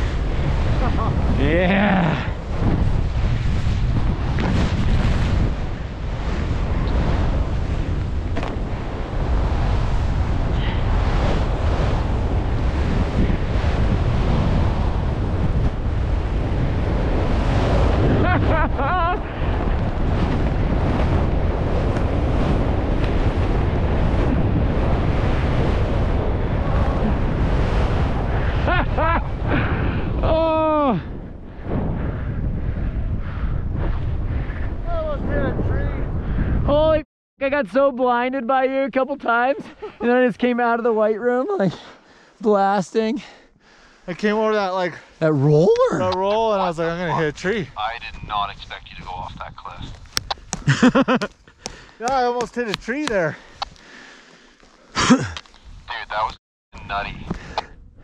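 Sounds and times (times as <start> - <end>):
wind noise on microphone: 0.0 - 37.0, 45.6 - 58.0
person whooping: 30.2 - 31.0
person yelling: 30.2 - 31.1, 45.5 - 46.2.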